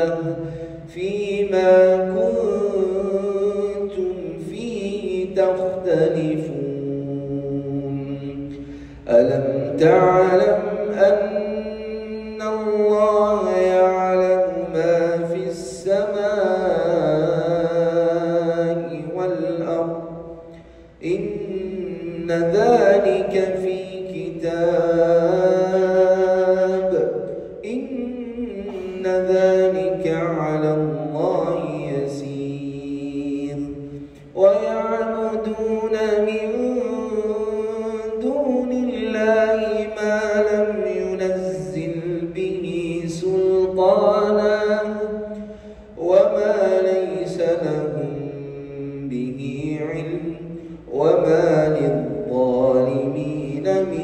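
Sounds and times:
man chanting melodically: 0.0s - 54.0s
man breathing: 0.4s - 0.9s, 8.5s - 9.1s, 20.4s - 21.0s, 45.4s - 46.0s, 50.5s - 50.9s.

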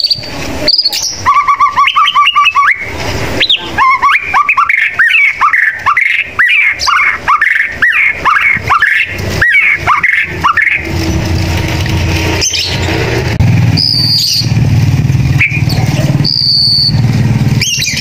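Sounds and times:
bird singing whistled notes: 0.0s - 10.9s, 13.7s - 14.6s, 15.4s - 17.0s, 17.6s - 18.0s
low steady rumble: 8.6s - 18.0s.

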